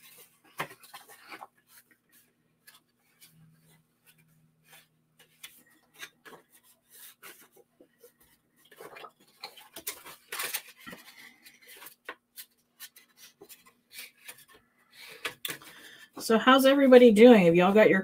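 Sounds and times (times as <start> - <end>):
paper rustling and scraping: 0.0 - 16.2.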